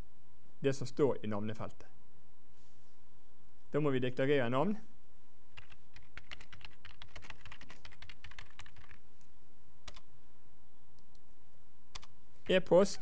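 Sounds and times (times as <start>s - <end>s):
computer keyboard typing: 5.6s - 9.0s, 9.8s - 10.1s, 11.9s - 12.1s.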